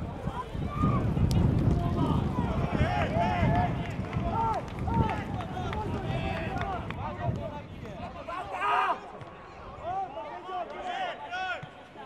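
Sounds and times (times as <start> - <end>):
open-air stadium noise: 0.0 - 12.0.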